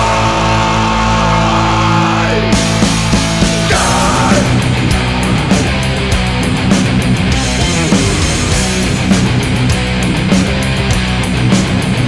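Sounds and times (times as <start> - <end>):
distorted electric guitar chord: 0.0 - 11.7.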